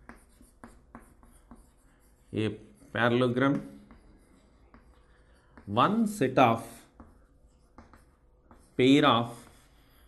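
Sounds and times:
chalk writing on chalkboard: 0:00.0 - 0:10.0.

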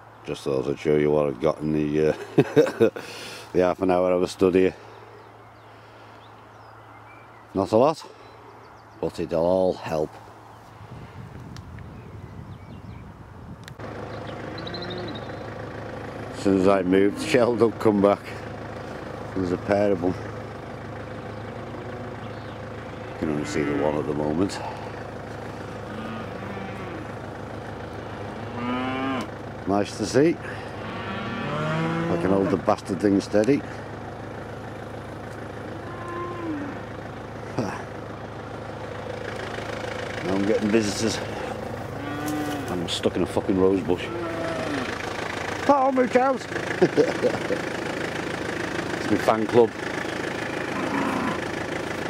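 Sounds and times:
steady low hum: 0:09.7 - 0:52.0
small click: 0:13.6 - 0:13.8
faint bird chirps: 0:14.1 - 0:15.5
cow lowing: 0:14.5 - 0:15.4, 0:21.6 - 0:22.5, 0:23.1 - 0:27.2, 0:27.9 - 0:29.3, 0:30.7 - 0:32.7, 0:35.6 - 0:36.9, 0:41.2 - 0:42.8, 0:43.9 - 0:45.0, 0:50.5 - 0:51.5.

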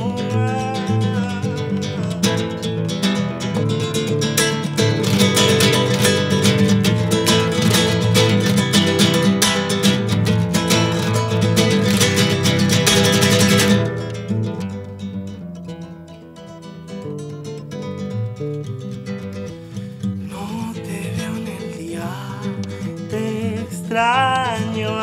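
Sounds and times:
acoustic guitar strummed rapidly: 0:00.0 - 0:25.0.

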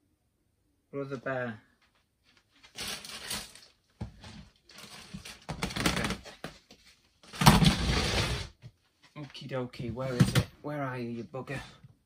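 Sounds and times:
plastic boxes and bags rustling: 0:02.5 - 0:06.6.

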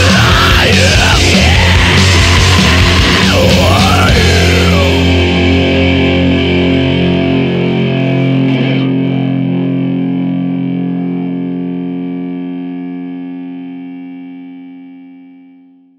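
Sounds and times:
distorted electric guitar chord ringing: 0:00.0 - 0:15.9.

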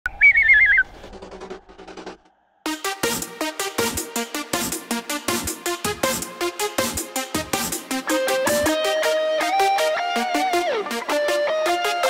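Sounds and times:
trilling whistle-like tone: 0:00.1 - 0:01.0.

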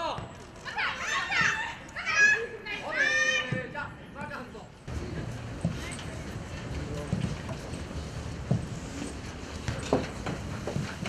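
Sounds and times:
women shouting: 0:00.7 - 0:03.6.

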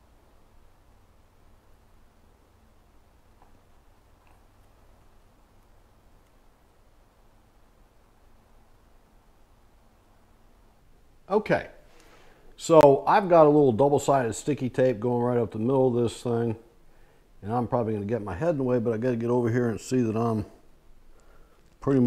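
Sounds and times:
faint low hum: 0:00.0 - 0:22.0.

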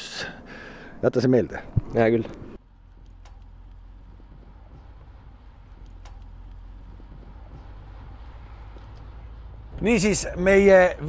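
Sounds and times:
road and wind rumble: 0:00.0 - 0:11.0.

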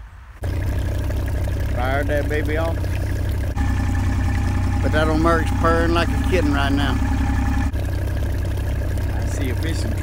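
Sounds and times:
outboard motor idling: 0:00.4 - 0:10.0.

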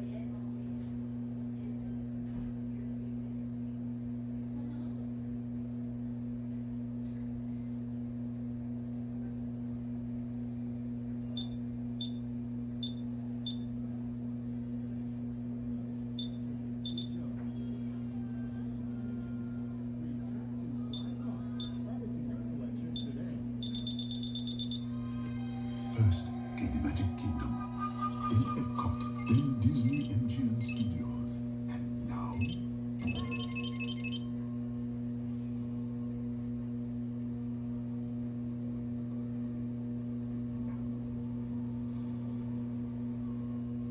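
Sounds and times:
low electrical hum: 0:00.0 - 0:43.9
short high beeps: 0:23.6 - 0:24.8, 0:29.2 - 0:31.0, 0:32.4 - 0:34.3.

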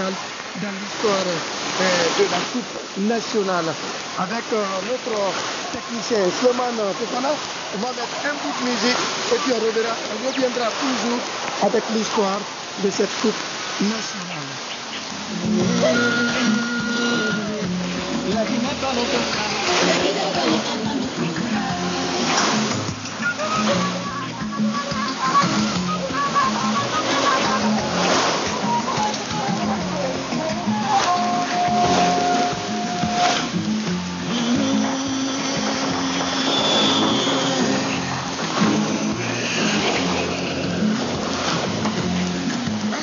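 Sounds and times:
radio static hiss: 0:00.0 - 0:33.5
music over radio: 0:15.3 - 0:43.0.

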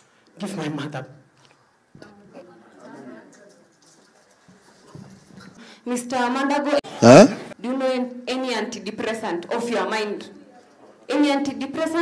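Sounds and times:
faint background murmur: 0:01.2 - 0:08.1, 0:09.0 - 0:12.0.

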